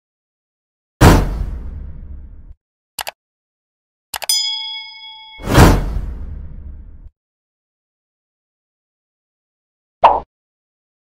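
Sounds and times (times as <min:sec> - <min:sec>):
bell-like ding: 0:04.3 - 0:05.9.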